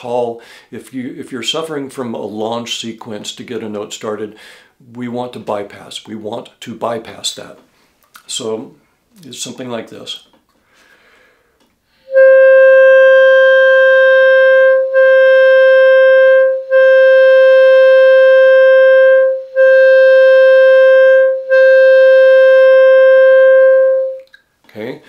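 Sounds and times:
clarinet long tone: 0:12.0 - 0:24.3.

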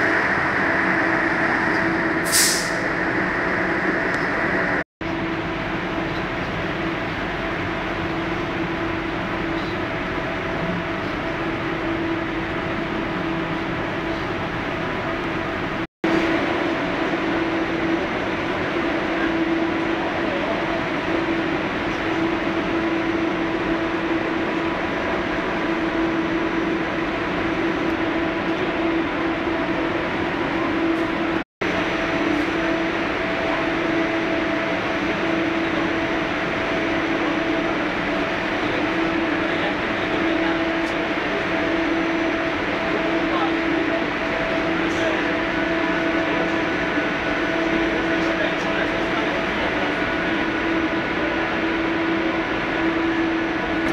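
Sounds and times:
train running noise: 0:00.0 - 0:53.9.

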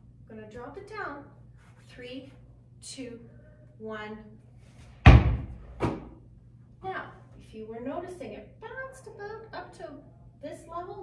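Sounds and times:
basketball bouncing on hard floor: 0:05.1 - 0:06.1
ball caught by hand: 0:05.1 - 0:06.2.

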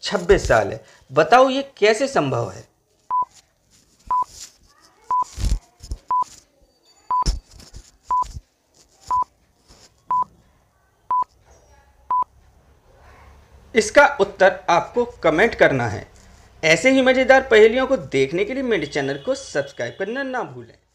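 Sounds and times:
short high beeps: 0:07.1 - 0:07.3.

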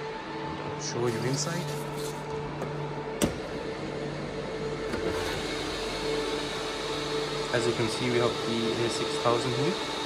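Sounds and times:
server fan whir: 0:00.0 - 0:10.0.

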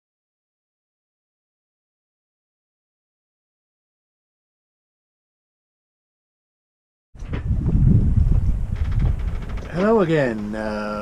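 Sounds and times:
wind buffeting microphone: 0:07.2 - 0:11.0.

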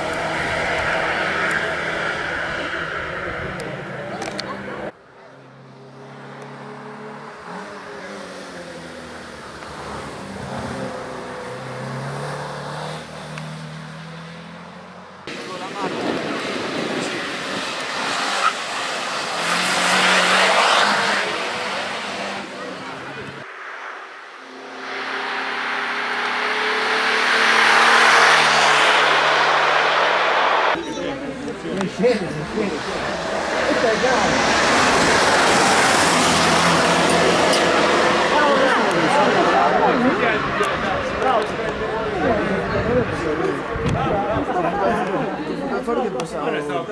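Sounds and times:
race car engine at high revs: 0:00.0 - 0:46.3.

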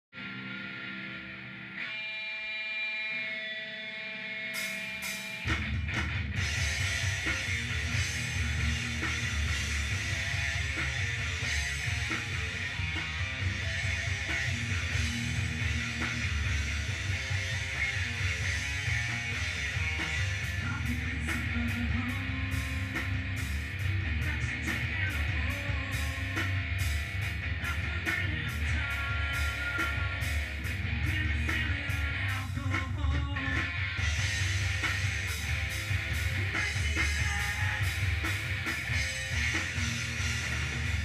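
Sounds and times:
electric guitar sustained notes: 0:00.2 - 0:32.1
live rock band playing: 0:00.2 - 0:41.0.

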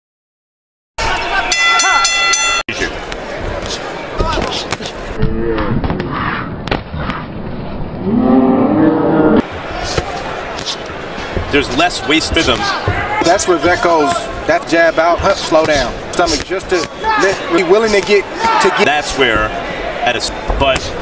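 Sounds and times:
arena crowd noise: 0:01.0 - 0:21.0.

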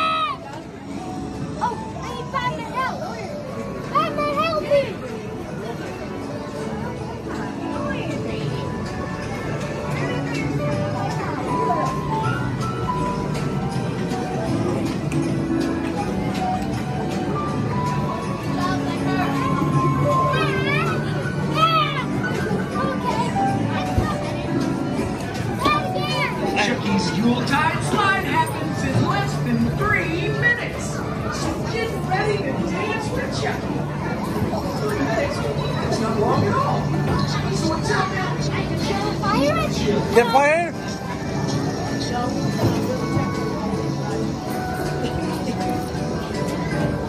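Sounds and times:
children's voices: 0:00.0 - 0:05.6, 0:17.9 - 0:27.3, 0:30.0 - 0:47.0
music: 0:00.0 - 0:47.0.

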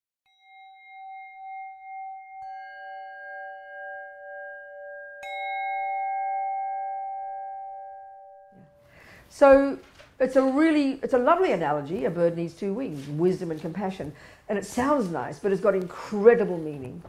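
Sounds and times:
singing bowls ringing: 0:00.3 - 0:08.9.

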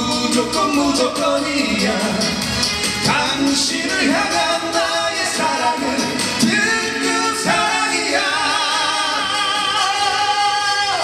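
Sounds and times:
band accompaniment: 0:00.0 - 0:11.0
men singing: 0:00.0 - 0:11.0.

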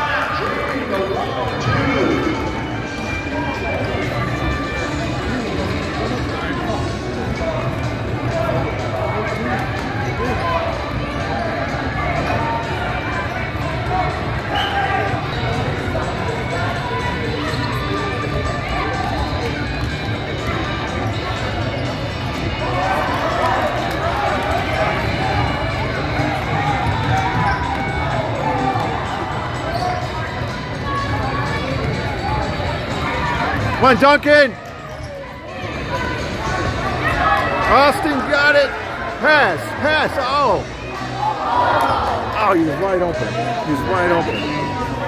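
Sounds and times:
spectators and players chattering: 0:00.0 - 0:45.0.

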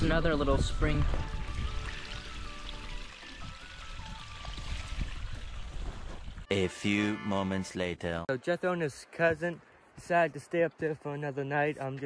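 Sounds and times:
background music held notes: 0:00.0 - 0:08.2
spring water trickling: 0:00.3 - 0:06.5.

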